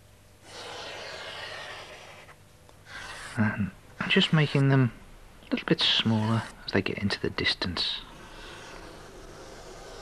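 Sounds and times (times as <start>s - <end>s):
charcoal scraping on paper: 0.4s - 3.4s, 8.2s - 10.0s.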